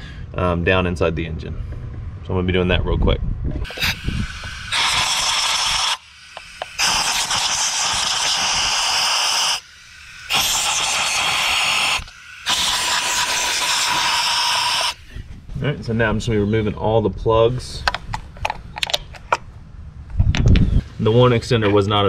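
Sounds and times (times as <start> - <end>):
compressed air hissing: 3.6 - 15.3.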